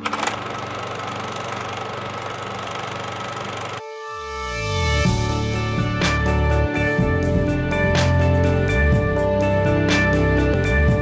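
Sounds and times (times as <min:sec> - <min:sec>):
film projector whirring: 0:00.0 - 0:03.8.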